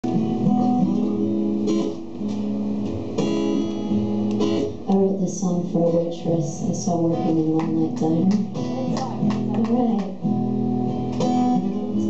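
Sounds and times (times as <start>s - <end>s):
acoustic guitar playing: 0.0s - 12.0s.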